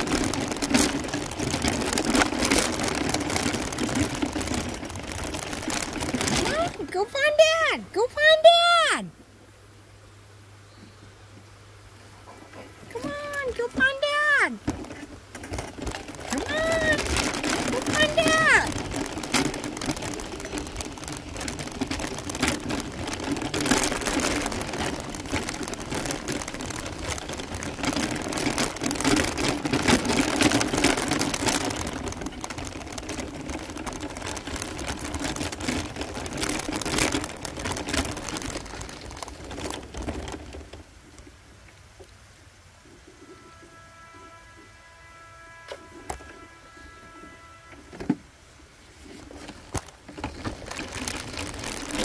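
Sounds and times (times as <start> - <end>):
wheels crunching on gravel: 0.0 - 9.0, 12.1 - 41.7, 43.2 - 52.0
constant low hum: 0.0 - 52.0.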